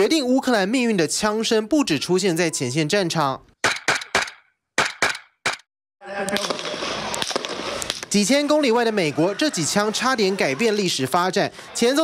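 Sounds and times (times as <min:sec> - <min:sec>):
gunshots: 0:06.3 - 0:08.1.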